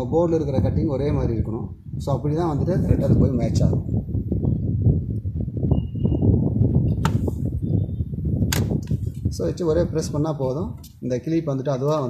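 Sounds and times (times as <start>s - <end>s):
memory slot clip snapping shut: 7.0s - 7.3s, 8.5s - 9.0s.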